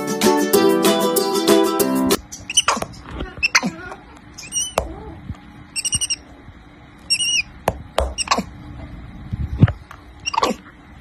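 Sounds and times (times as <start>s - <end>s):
monkey squeaks dropping in pitch: 2.4s - 2.8s, 3.4s - 3.7s, 4.4s - 4.9s, 5.8s - 6.2s, 7.1s - 7.5s, 8.1s - 8.5s, 10.2s - 10.6s
monkey chirping calls: 2.4s - 3.7s, 4.4s - 4.8s, 5.7s - 6.3s, 7.1s - 8.5s, 10.2s - 10.6s.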